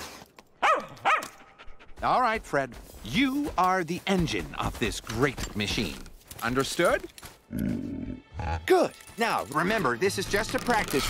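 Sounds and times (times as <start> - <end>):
small dog barking: 0.6 - 1.4.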